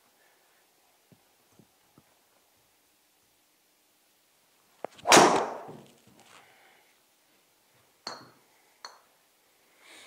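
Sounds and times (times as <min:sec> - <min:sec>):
golf driver striking ball: 0:05.0 - 0:05.7.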